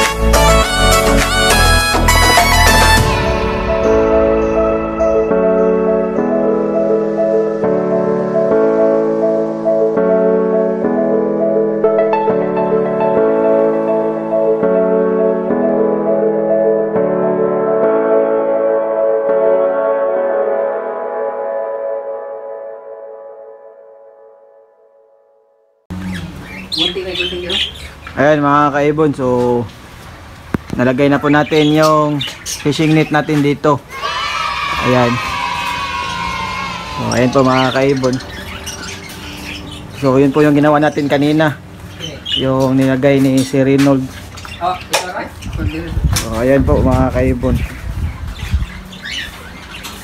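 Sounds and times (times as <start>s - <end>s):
pet birds squawking and chirping: 25.9s - 29.6s, 30.6s - 50.0s.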